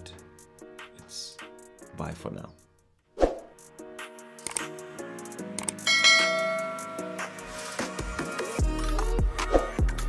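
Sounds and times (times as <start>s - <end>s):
background music: 0.0s - 10.0s
bell chime: 5.9s - 7.4s.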